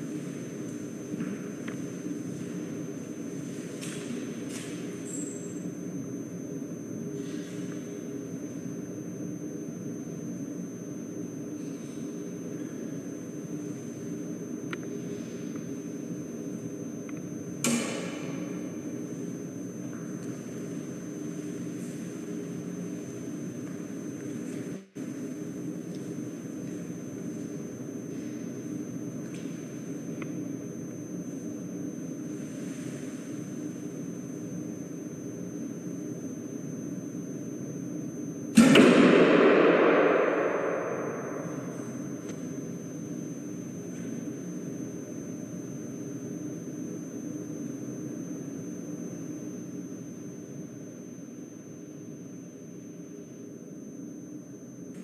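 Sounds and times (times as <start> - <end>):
steady room hum: 0.0 - 55.0
arrow shot from a bow: 38.6 - 41.9.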